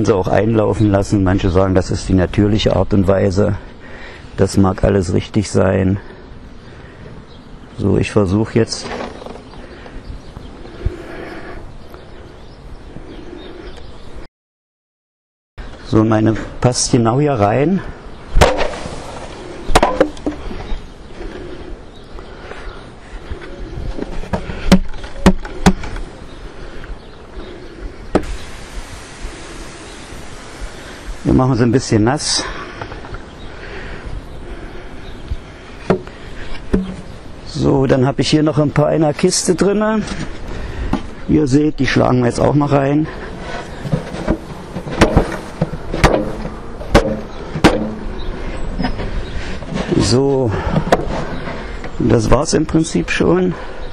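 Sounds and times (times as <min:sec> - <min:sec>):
wooden box banged down: 0:18.4 - 0:20.4, 0:43.9 - 0:48.1.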